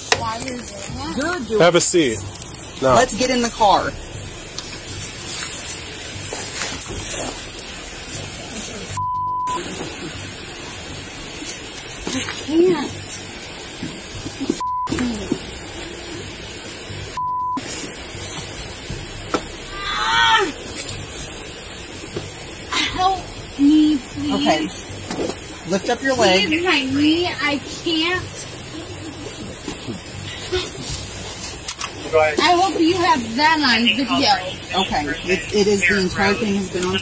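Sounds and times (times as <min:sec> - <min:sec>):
woman talking: 0:00.0 - 0:01.6, 0:12.1 - 0:13.0, 0:22.7 - 0:24.9, 0:25.6 - 0:29.4, 0:32.4 - 0:37.0
high-pitched censor bleeps: 0:08.9 - 0:09.6, 0:14.6 - 0:15.3, 0:17.2 - 0:17.6.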